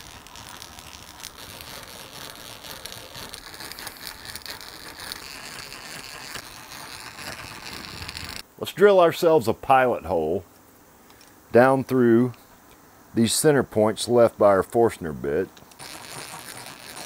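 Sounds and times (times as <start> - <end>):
hand drill gears whirring: 0.0 - 8.4, 15.7 - 17.0.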